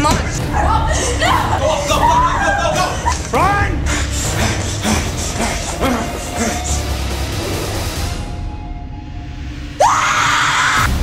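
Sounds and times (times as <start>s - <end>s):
low rumbling music: 0.0s - 11.0s
woman screaming: 0.6s - 3.2s, 9.8s - 10.9s.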